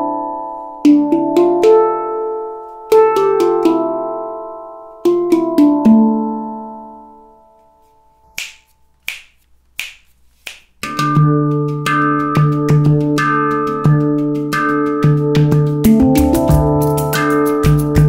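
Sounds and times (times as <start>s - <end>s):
handpan melody: 0.0s - 7.4s, 10.8s - 18.0s.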